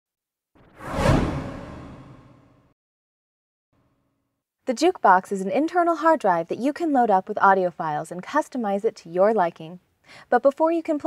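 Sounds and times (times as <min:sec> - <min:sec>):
whoosh transition effect: 0:00.6 - 0:02.7.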